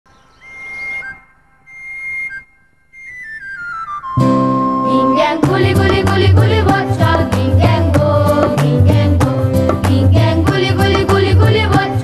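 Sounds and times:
whistle-like wind instrument melody: 0.4 - 5.4.

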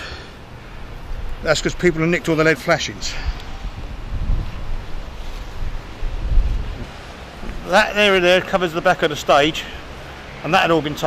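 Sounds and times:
wind buffeting microphone: 0.8 - 8.6.

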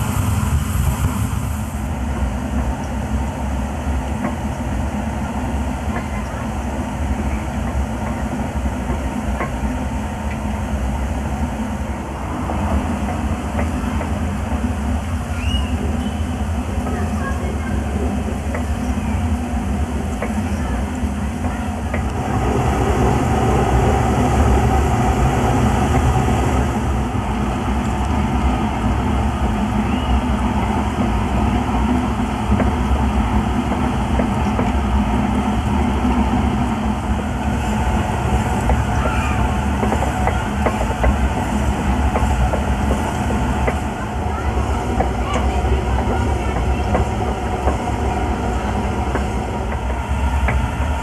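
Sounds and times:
steam engine clattering: 2.0 - 51.0.

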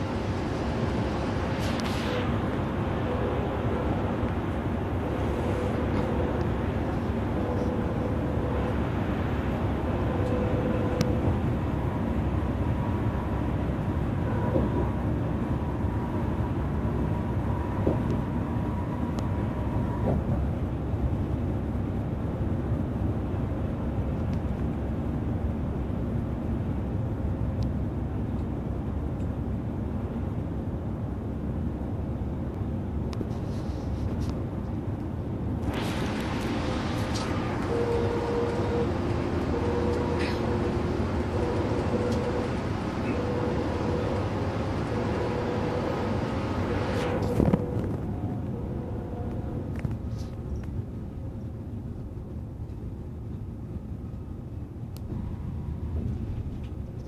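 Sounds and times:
coach engine and tyre noise: 0.0 - 57.0.

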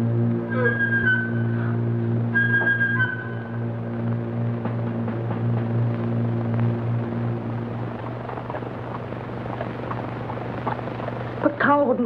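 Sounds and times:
low hum over hiss: 0.0 - 12.0
woman speaking: 11.4 - 12.0.

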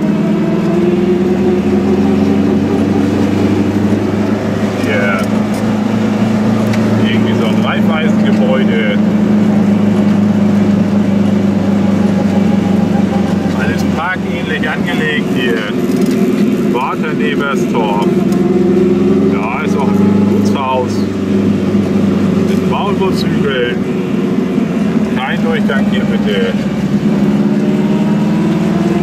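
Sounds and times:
two-stroke car engine running: 0.0 - 29.0.

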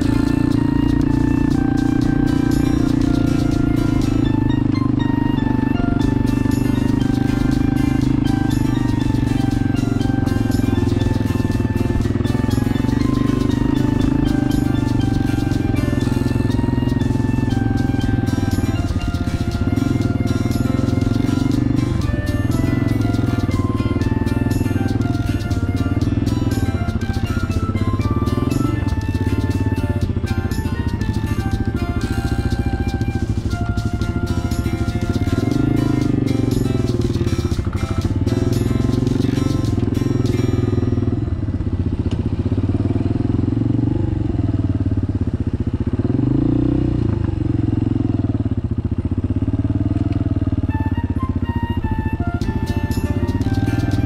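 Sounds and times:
background music: 0.0 - 44.7, 50.7 - 54.0
motorcycle engine running: 0.0 - 54.0.

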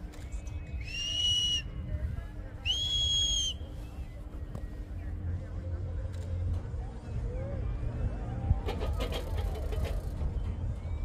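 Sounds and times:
low background rumble: 0.0 - 11.0
high-pitched whistle blasts: 2.7 - 3.7.

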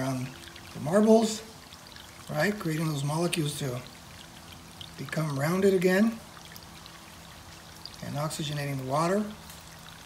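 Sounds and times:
water pouring and splashing: 0.0 - 10.0.

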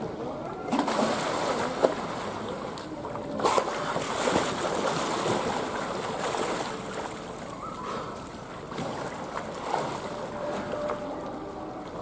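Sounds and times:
water splashing and lapping: 0.0 - 12.0.

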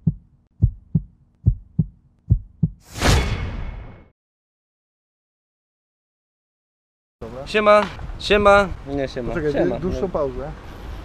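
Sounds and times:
heartbeat thumps: 0.0 - 2.8.

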